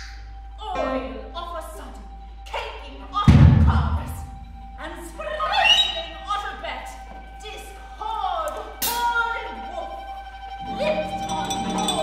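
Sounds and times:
deep percussion thump: 3.3s - 4.6s.

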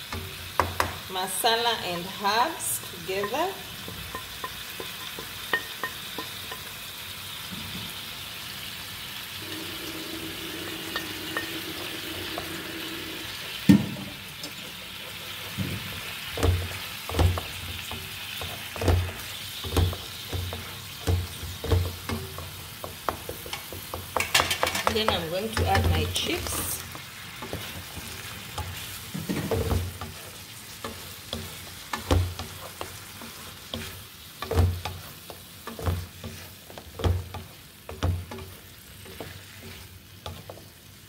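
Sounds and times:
food sizzling in a frying pan: 0.0s - 41.0s
spoon knocking against pan: 0.1s - 1.1s, 3.2s - 6.7s, 10.9s - 12.6s, 15.5s - 30.2s, 30.8s - 39.3s
wooden spoon stirring: 9.4s - 13.7s, 14.4s - 41.0s.

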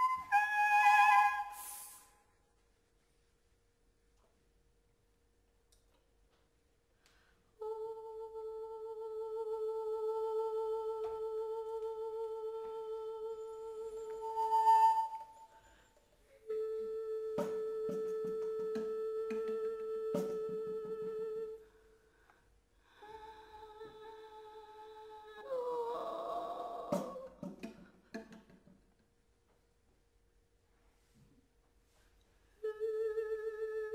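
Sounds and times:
woodwinds and voice holding notes: 0.0s - 2.1s, 13.2s - 15.4s.

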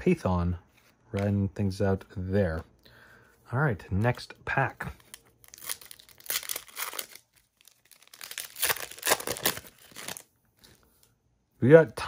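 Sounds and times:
foil wrapper crinkling and tearing: 5.0s - 10.8s.

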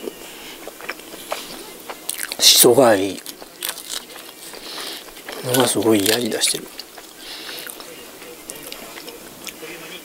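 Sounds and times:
faint steady hum: 0.0s - 10.0s
soft chewing and mouth sounds: 0.0s - 10.0s.

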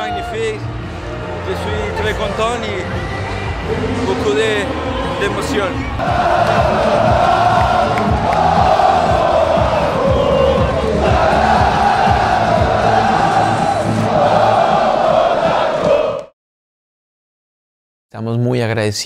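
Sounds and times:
stadium crowd: 0.0s - 16.4s
group chanting and singing: 5.8s - 16.3s.

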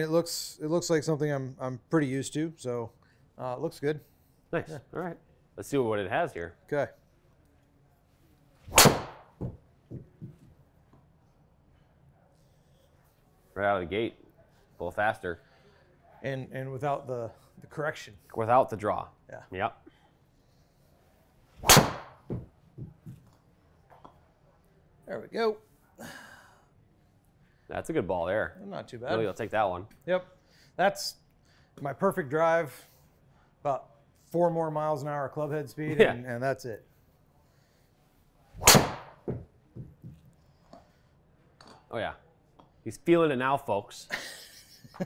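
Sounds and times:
golf club striking ball: 38.6s - 39.4s.

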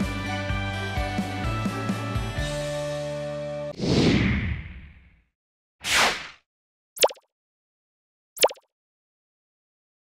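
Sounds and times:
pop sound effect falling in pitch: 7.0s - 7.3s, 8.4s - 8.7s.

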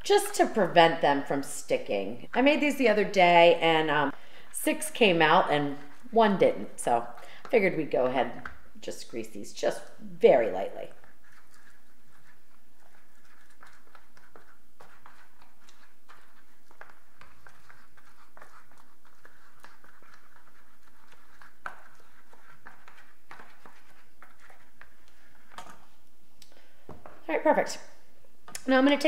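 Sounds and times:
pastry brush tapping and scraping: 10.5s - 26.1s.

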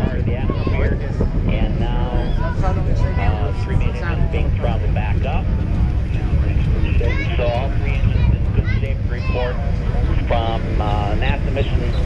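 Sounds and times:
distant rocket launch roar: 0.0s - 12.0s
people's voices: 0.0s - 12.0s.

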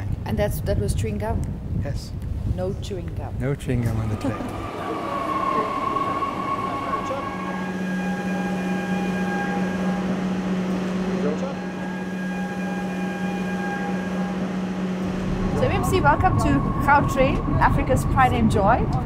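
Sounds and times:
train low steady hum: 2.3s - 19.0s
electric train whine: 3.4s - 19.0s
higher steady tones: 3.6s - 19.0s.

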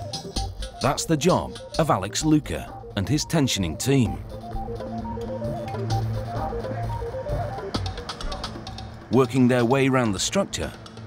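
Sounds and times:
steady low bass: 0.5s - 9.1s.

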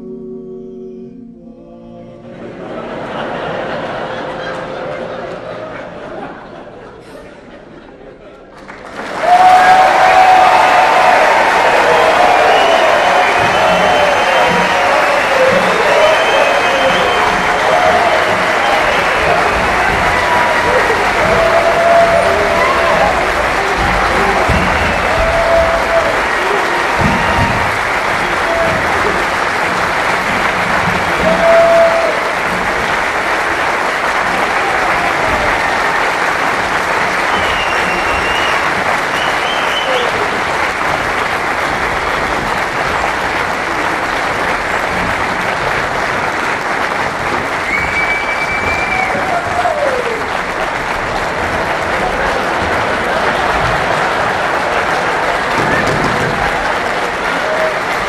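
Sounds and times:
audience applauding: 2.6s - 6.9s, 8.2s - 58.0s
whoops and yells: 9.2s - 29.2s, 31.1s - 32.3s, 47.7s - 50.3s.

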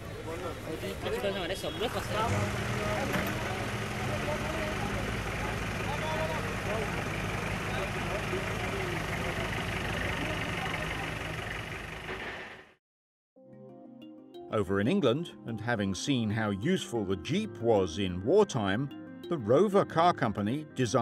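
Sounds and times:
off-road engines running: 0.0s - 12.8s.

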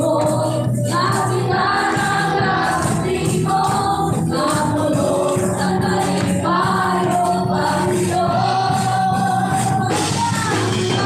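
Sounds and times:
keyboard and electric guitars: 0.0s - 11.0s
people singing together: 0.0s - 11.0s.

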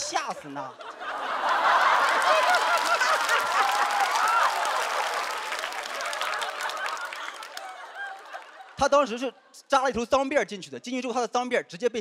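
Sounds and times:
audience laughing: 0.3s - 9.6s
audience applauding: 1.3s - 8.8s.

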